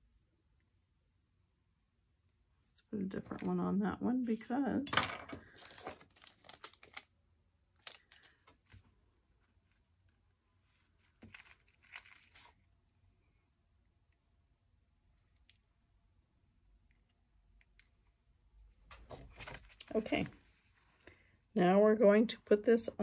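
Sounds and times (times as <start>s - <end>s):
paper and card rustling: 5.5s - 7.1s, 10.8s - 12.6s, 18.9s - 20.8s.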